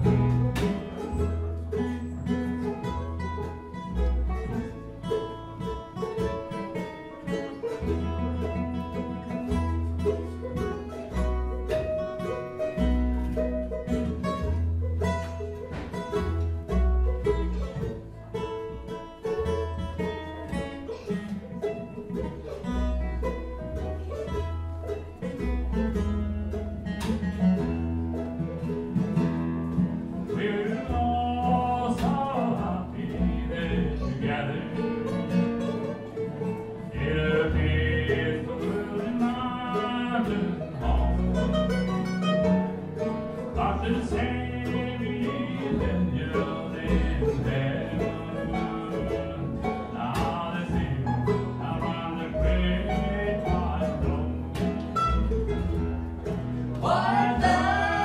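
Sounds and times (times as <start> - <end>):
plucked upright bass: 0.0 - 58.0
strummed acoustic guitar: 0.0 - 58.0.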